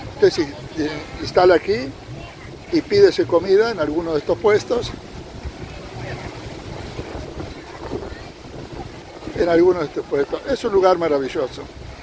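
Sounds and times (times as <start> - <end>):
faint chatter of people: 0.0 - 12.0
wind buffeting microphone: 0.0 - 12.0.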